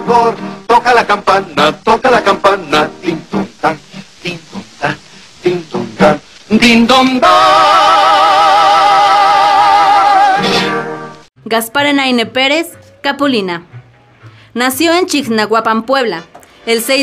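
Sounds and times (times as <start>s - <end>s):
men singing comic song: 0.0s - 10.8s
guitar: 0.0s - 17.0s.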